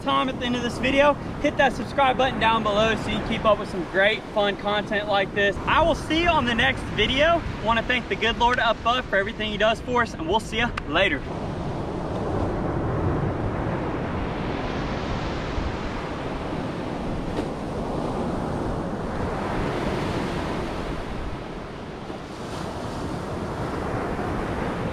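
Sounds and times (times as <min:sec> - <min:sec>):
ocean surf on sand: 0:00.0 - 0:24.9
wind buffeting microphone: 0:00.0 - 0:24.9.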